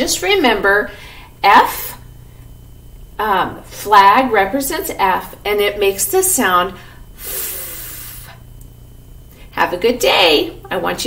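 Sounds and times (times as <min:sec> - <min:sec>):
faint room hum: 0:00.0 - 0:11.0
woman making sustained f sound: 0:07.2 - 0:08.4.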